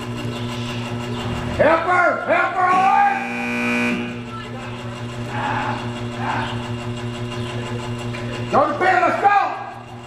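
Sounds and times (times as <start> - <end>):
low hum: 2.5 - 7.0.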